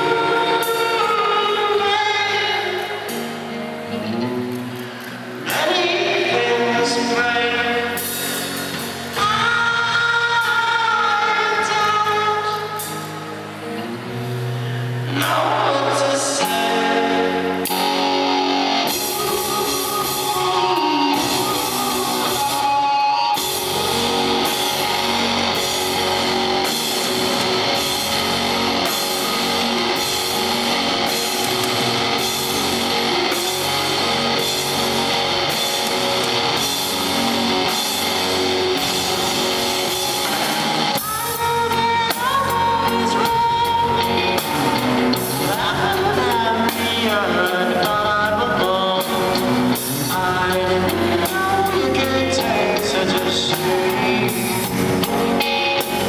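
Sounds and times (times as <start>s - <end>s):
person singing: 0.0s - 3.6s, 5.4s - 13.9s, 15.0s - 56.0s
drums: 0.0s - 56.0s
electric guitar: 0.0s - 56.0s.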